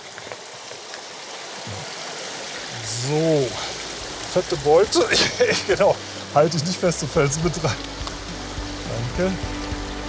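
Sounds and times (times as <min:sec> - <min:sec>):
brook running over stones: 0:00.0 - 0:10.0.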